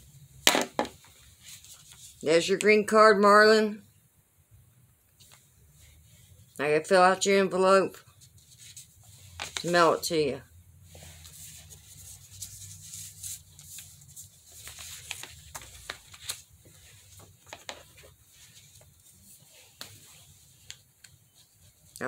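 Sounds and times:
jacket sleeve rustling: 10.8 - 22.0
paper and envelope handling: 11.2 - 20.0.

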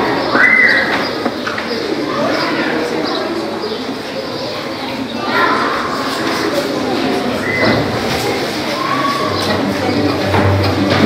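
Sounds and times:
audience chatter in a hall: 0.0 - 11.0.

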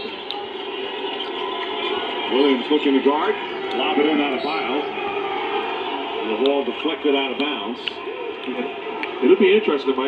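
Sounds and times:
muffled crowd murmur: 0.0 - 10.0.

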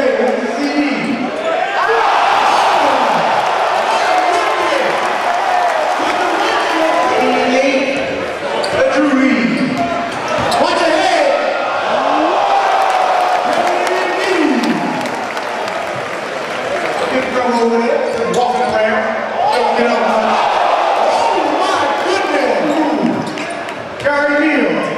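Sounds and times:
large crowd noise: 0.0 - 24.9.

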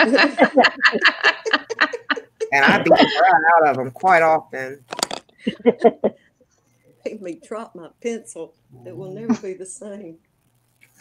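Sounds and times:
person laughing: 0.0 - 3.7, 5.4 - 6.2.

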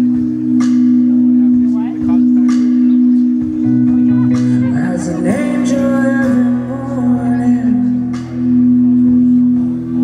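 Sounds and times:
live band held note: 0.0 - 10.0.

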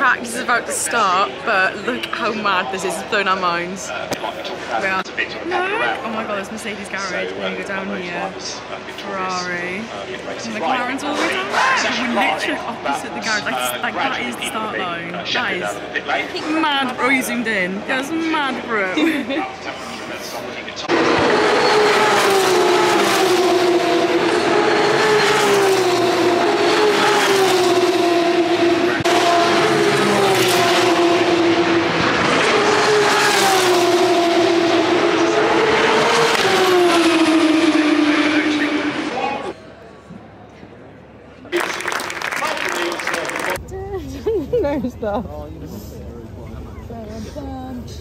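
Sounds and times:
racing car engines at high revs: 10.6 - 14.5, 20.7 - 39.6.

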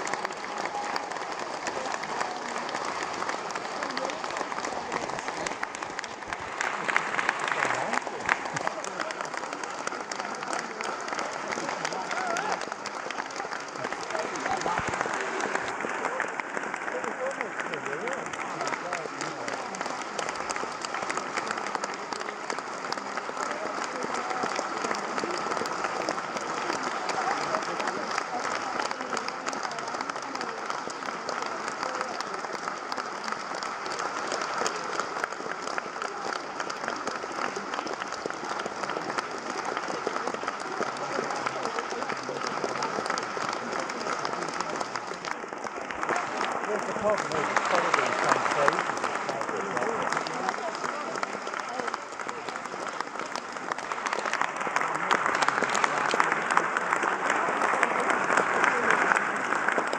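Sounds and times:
audience applauding: 0.0 - 59.9
voices: 0.0 - 59.9.

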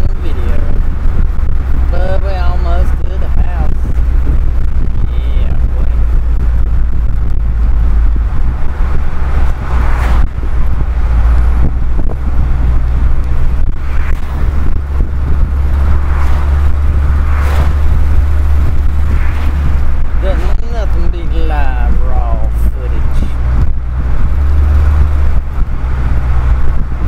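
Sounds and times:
car engine and road noise: 0.0 - 27.0.

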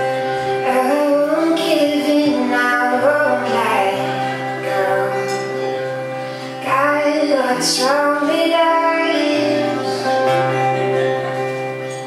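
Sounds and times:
acoustic guitar chords: 0.0 - 12.0
woman singing: 0.5 - 10.6.

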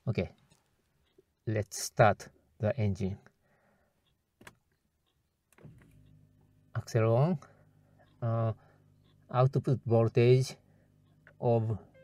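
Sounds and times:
faint low electrical hum: 0.0 - 12.0.

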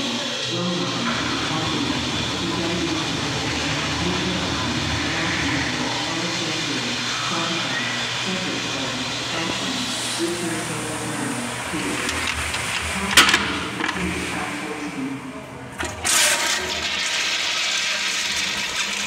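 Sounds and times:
indistinct echoing voices: 0.0 - 19.0
toilet flushing: 0.0 - 19.0.

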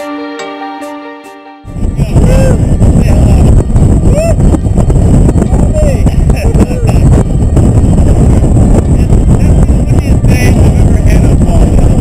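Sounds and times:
wind buffeting microphone: 1.7 - 12.0.

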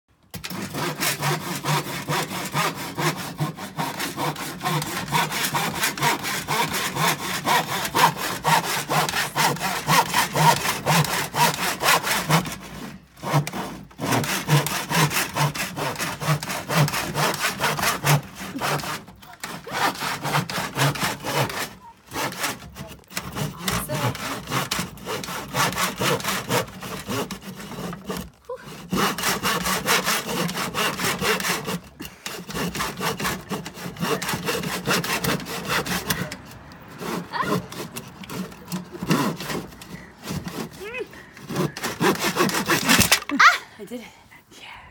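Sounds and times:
hand saw cutting wood: 0.3 - 43.6.

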